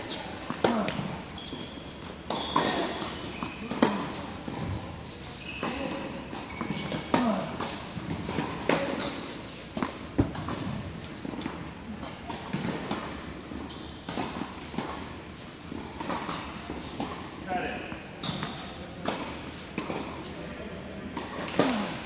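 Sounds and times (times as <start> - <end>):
tennis balls struck and bouncing: 0.1 - 4.9, 5.6 - 20.3, 21.1 - 22.0.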